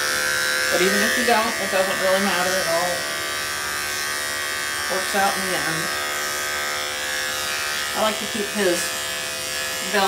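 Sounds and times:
electric clippers buzzing: 0.0s - 10.0s.

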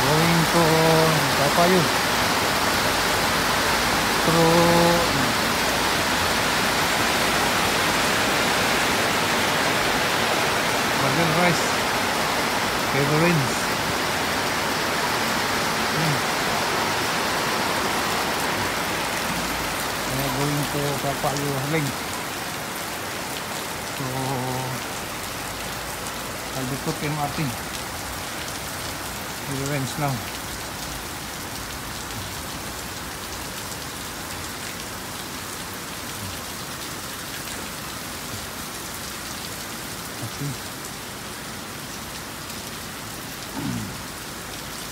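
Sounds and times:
heavy rain on road: 0.0s - 44.9s.

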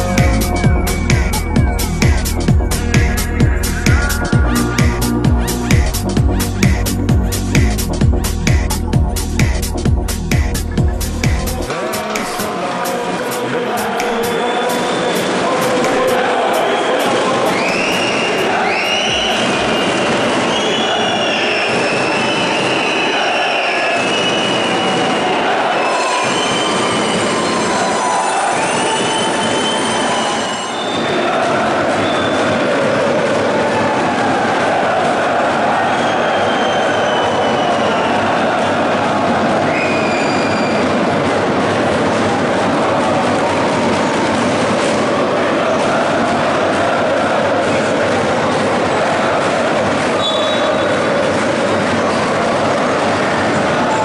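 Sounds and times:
crowd chanting: 11.6s - 54.0s
shrill whistles: 16.6s - 32.6s, 35.7s - 38.6s, 39.6s - 41.0s, 50.2s - 51.0s.

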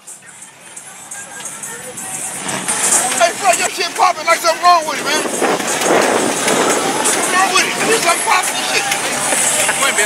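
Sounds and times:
broad rush of noise: 0.0s - 10.0s
vehicle sound: 0.0s - 10.0s
voices: 0.0s - 10.0s.

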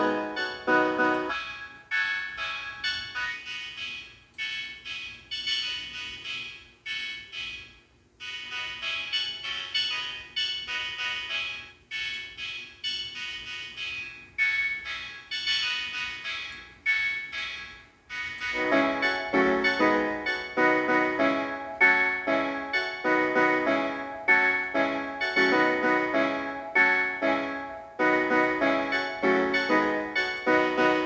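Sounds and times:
high-pitched beat melody: 0.0s - 4.1s, 18.1s - 31.0s.

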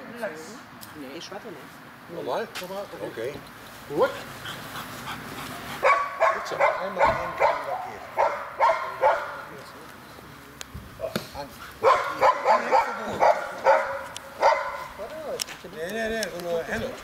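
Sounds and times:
dog barking in quick bursts: 5.8s - 9.4s, 11.8s - 15.0s.

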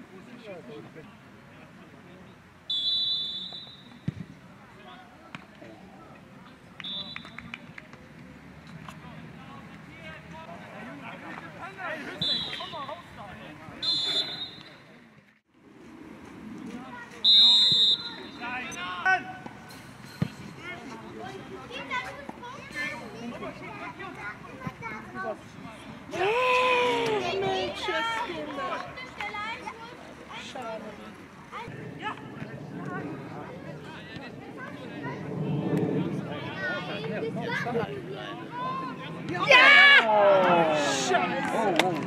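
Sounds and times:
referee's whistle blast: 2.7s - 4.0s, 12.2s - 13.0s, 13.8s - 14.8s, 17.3s - 18.4s
football players shouting: 26.1s - 28.8s, 38.5s - 42.0s.

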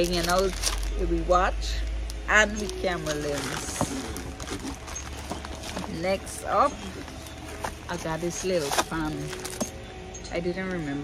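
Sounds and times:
low hum: 0.0s - 11.0s
items and packaging knocking: 2.6s - 9.8s.

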